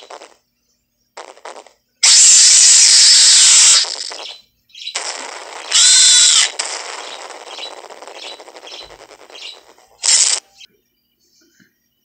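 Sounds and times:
crackling hiss: 0.0s - 0.4s, 1.2s - 10.7s
shrill cry with wavering pitch: 2.0s - 4.2s, 4.9s - 10.4s
short loud burst: 5.0s - 8.8s.

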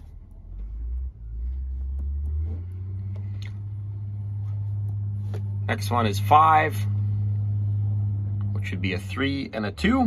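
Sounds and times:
engine revving: 0.0s - 10.0s.

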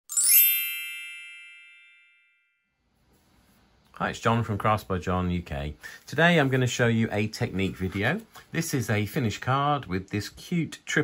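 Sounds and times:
bell-like chime: 0.1s - 2.8s.

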